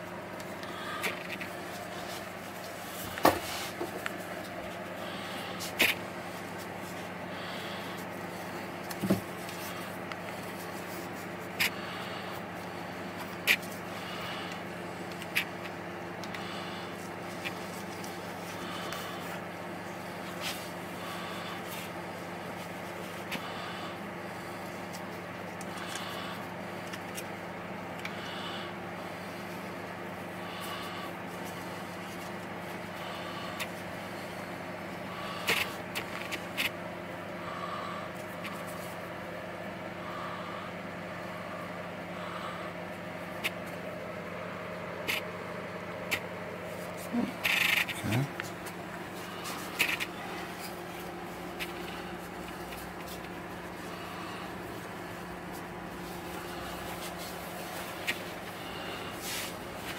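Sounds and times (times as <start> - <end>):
room equipment hum: 0.0 - 59.9.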